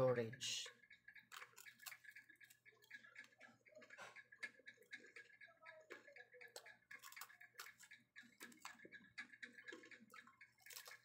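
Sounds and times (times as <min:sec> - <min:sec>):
biscuit being chewed: 0:01.2 - 0:05.2, 0:05.9 - 0:11.0.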